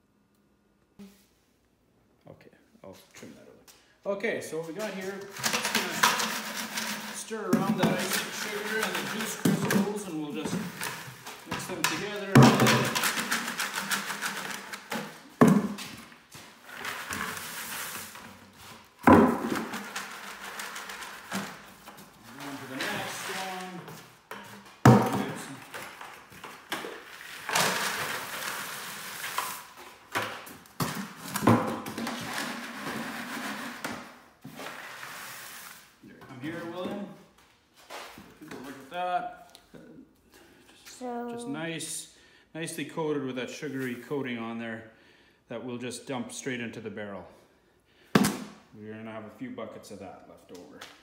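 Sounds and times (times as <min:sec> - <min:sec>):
pail rims knocking: 0:05.3 - 0:15.9, 0:19.0 - 0:21.6, 0:24.3 - 0:26.0.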